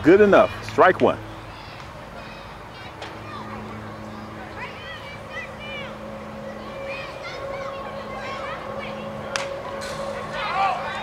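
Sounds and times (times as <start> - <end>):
people calling out: 1.3 - 11.0.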